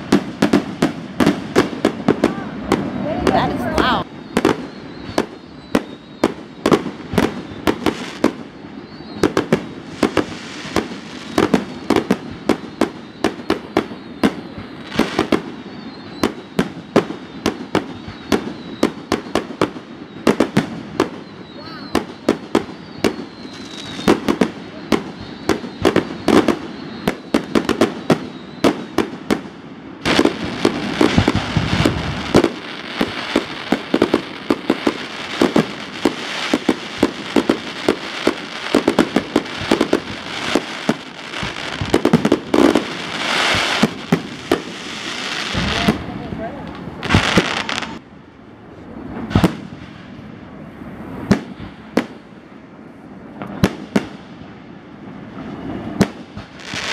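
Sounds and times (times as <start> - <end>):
fireworks bangs: 0.0 - 48.1, 48.7 - 56.9
fireworks crackling: 0.0 - 56.9.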